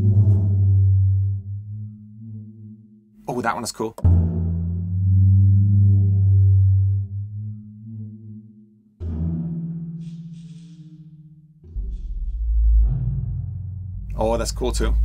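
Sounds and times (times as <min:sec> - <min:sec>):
low moaning drum tones: 0:00.0 - 0:02.7, 0:04.0 - 0:07.6, 0:09.0 - 0:15.0.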